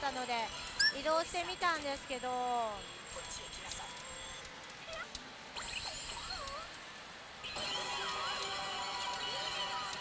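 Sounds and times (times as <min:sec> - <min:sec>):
pachinko machine sound effects: 0:00.8 - 0:01.1.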